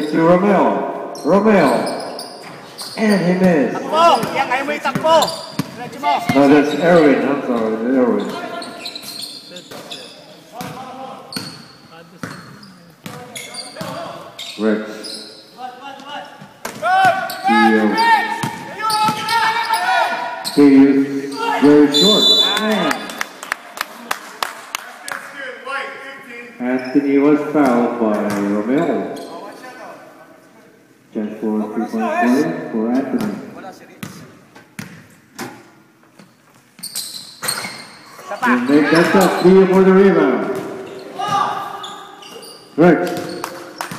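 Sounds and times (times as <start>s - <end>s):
players' voices echoing: 0.0s - 34.4s, 38.1s - 43.9s
sneakers squeaking on floor: 1.1s - 3.4s, 4.0s - 15.6s, 16.4s - 20.6s, 26.8s - 27.1s, 28.7s - 29.7s, 34.0s - 43.9s
basketball bouncing on hardwood floor: 4.2s - 6.4s.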